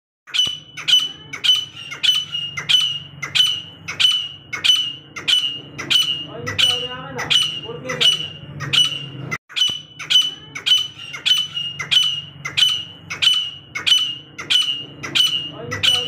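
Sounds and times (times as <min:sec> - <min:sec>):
francolin calling: 0:00.3 - 0:16.0.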